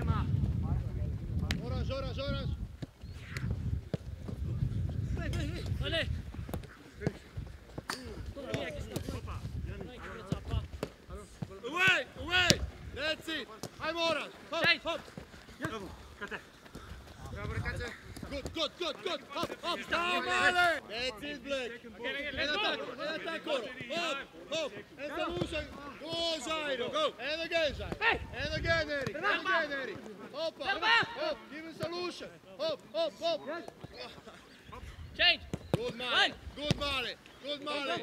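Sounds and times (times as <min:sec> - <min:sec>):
men shouting calls: 0:11.6 - 0:16.5, 0:17.4 - 0:38.0.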